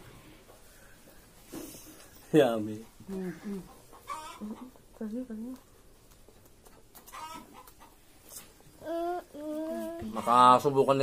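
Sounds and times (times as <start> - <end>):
chicken clucking: 3.4 - 5.2, 6.3 - 8.4.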